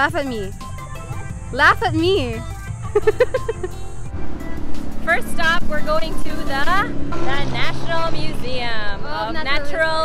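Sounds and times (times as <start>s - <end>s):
background music: 0.0s - 10.0s
street traffic hum: 0.0s - 10.0s
woman laughing: 2.8s - 3.9s.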